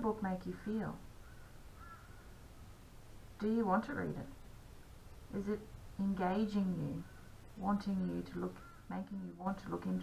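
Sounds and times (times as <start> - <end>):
low steady hum: 0.0 - 10.0
faint bird calling: 1.2 - 2.5, 6.9 - 7.5, 8.5 - 9.4.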